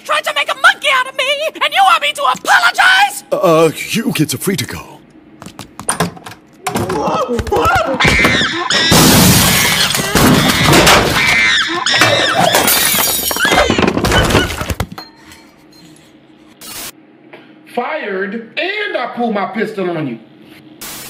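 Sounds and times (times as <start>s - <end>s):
shrill screeching: 7.9s - 13.8s
cartoon crashing and breaking: 8.0s - 14.8s.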